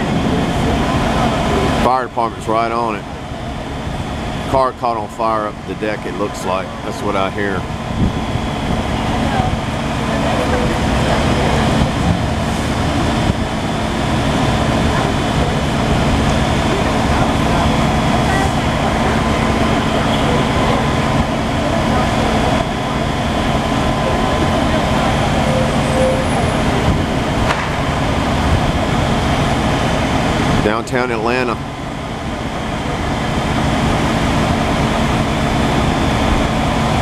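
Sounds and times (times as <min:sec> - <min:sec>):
diesel engines idling: 0:00.0 - 0:37.0.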